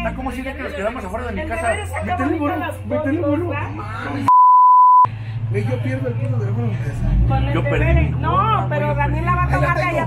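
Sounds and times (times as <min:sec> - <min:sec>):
people talking: 0:00.0 - 0:04.3, 0:05.6 - 0:10.0
high-pitched censor bleep: 0:04.3 - 0:05.1.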